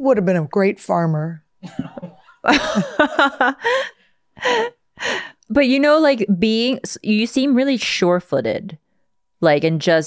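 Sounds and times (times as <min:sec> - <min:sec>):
woman laughing: 0:01.6 - 0:04.8
breathy gasping: 0:03.6 - 0:05.4.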